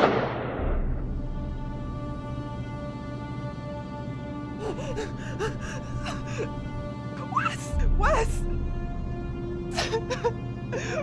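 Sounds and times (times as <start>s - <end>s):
woman sobbing: 4.5s - 8.4s, 9.6s - 11.0s.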